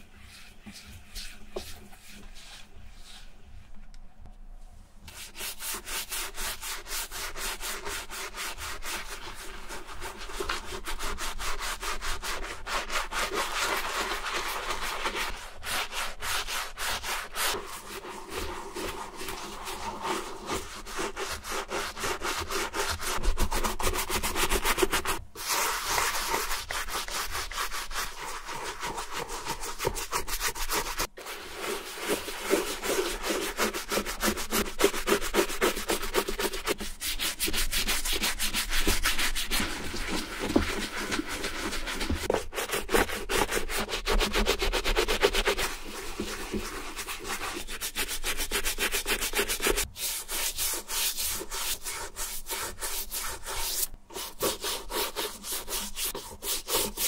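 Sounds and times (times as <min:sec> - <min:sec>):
brush scrubbing leather: 0:00.0 - 0:03.4, 0:05.1 - 0:57.0.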